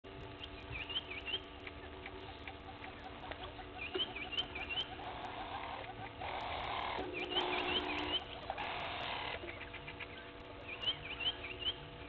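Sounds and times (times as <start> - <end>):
faint clicks: 0.2 - 9.6
bird whistling: 3.8 - 11.9.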